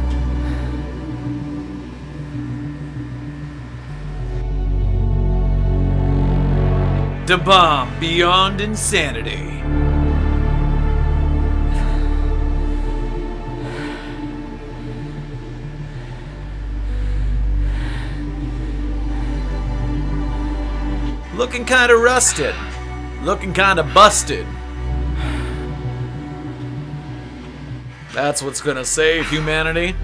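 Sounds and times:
deep rumbling: 0:00.0 - 0:30.0
low droning hum: 0:00.0 - 0:30.0.

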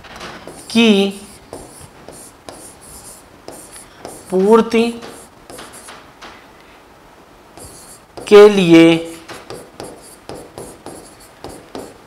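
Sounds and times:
chalk scratching on blackboard: 0:00.4 - 0:06.0, 0:07.6 - 0:08.5, 0:09.4 - 0:12.0.

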